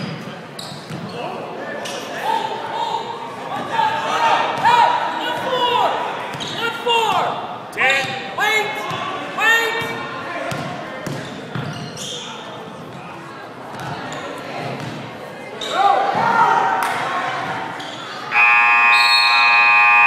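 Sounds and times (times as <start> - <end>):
voices of players and spectators: 0.0 - 20.0
scoreboard buzzer: 18.3 - 20.0.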